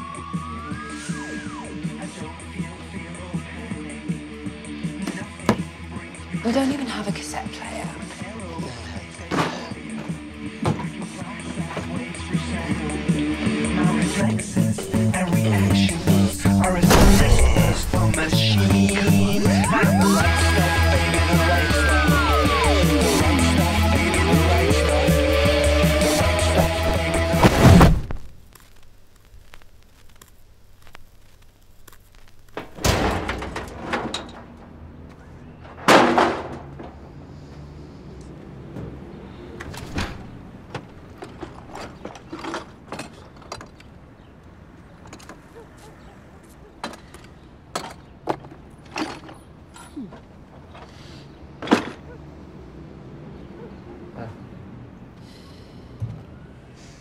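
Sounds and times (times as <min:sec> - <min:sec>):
music: 0:00.0 - 0:27.9
objects thudding into a skip: 0:16.6 - 0:18.2, 0:26.6 - 0:28.4, 0:35.6 - 0:37.0.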